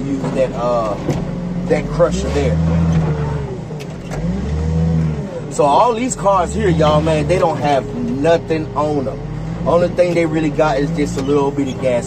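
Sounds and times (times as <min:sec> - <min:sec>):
car crusher engine revving: 0:00.0 - 0:12.0.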